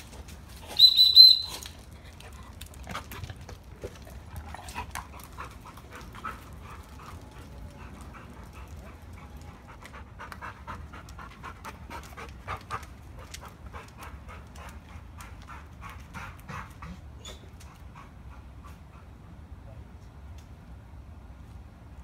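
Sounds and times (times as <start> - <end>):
dog panting: 1.9 - 19.4.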